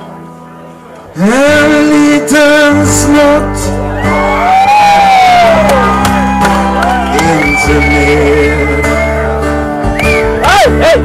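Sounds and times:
bass guitar: 0:00.0 - 0:11.0
electric guitar: 0:00.0 - 0:11.0
man singing: 0:01.1 - 0:03.9, 0:07.0 - 0:09.4, 0:10.4 - 0:11.0.

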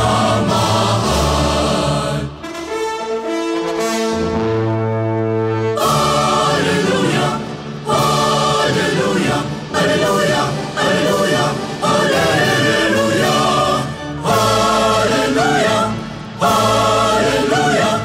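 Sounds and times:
choir singing: 0:00.0 - 0:02.8, 0:05.7 - 0:18.0
brass and orchestra chord: 0:00.0 - 0:18.0.

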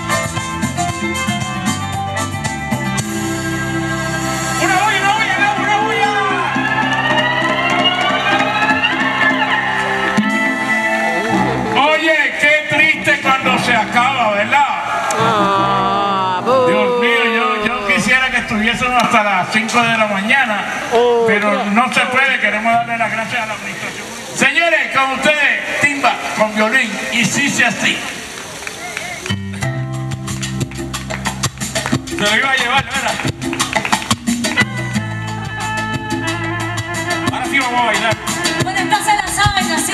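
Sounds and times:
live band playing: 0:00.0 - 0:23.7, 0:28.1 - 0:39.9
man's voice: 0:11.8 - 0:28.1, 0:37.2 - 0:38.6.

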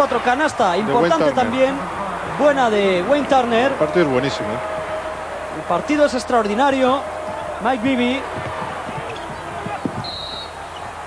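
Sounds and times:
crowd noise: 0:00.0 - 0:11.0
referee's whistle: 0:04.4 - 0:11.0.

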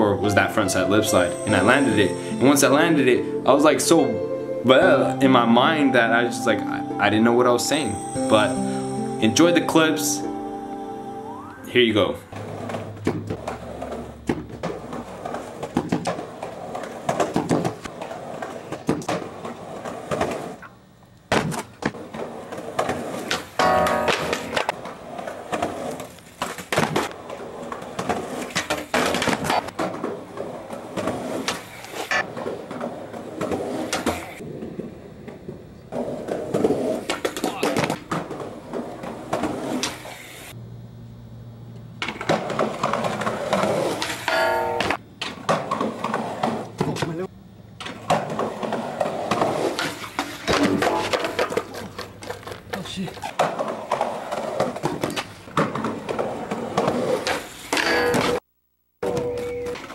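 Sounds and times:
skateboard wheels rolling on concrete: 0:00.0 - 0:40.6, 0:41.5 - 0:59.9
skateboard knocking on handrail and stairs: 0:12.4 - 0:20.7, 0:21.3 - 0:40.0, 0:42.0 - 0:47.2, 0:47.8 - 0:58.4.

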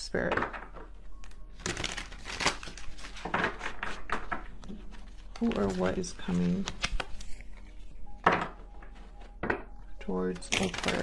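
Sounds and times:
cards being shuffled: 0:01.2 - 0:07.9, 0:10.4 - 0:11.0.

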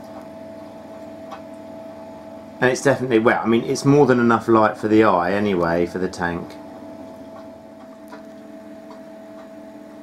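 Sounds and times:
aquarium pumps humming: 0:00.0 - 0:10.0.

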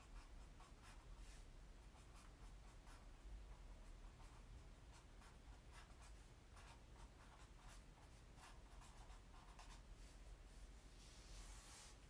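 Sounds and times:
pen scratching on paper: 0:03.8 - 0:09.9.

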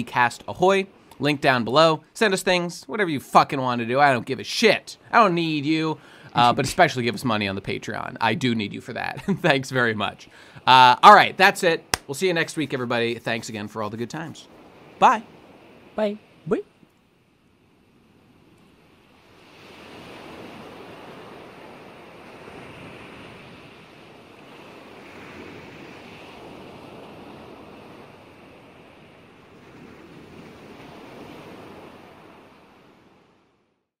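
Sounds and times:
ocean waves washing: 0:00.0 - 0:33.7.

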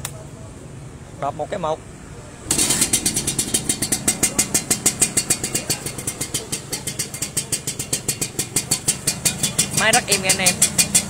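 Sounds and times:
motorcycle engine starting and idling: 0:02.1 - 0:11.0.

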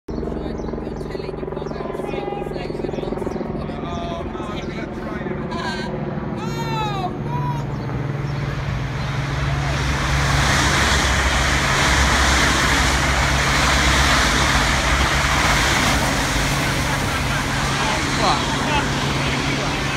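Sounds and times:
low hum and rumble: 0:00.1 - 0:19.9
trains passing at speed: 0:08.1 - 0:19.9.

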